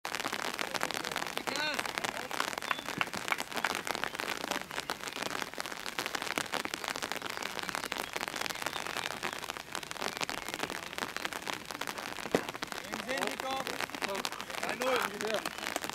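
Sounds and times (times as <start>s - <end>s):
rain pattering: 0.0s - 15.9s.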